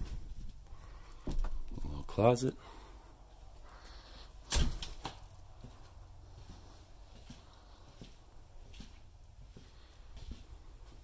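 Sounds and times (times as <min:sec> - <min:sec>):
faint footsteps: 0:02.6 - 0:11.0.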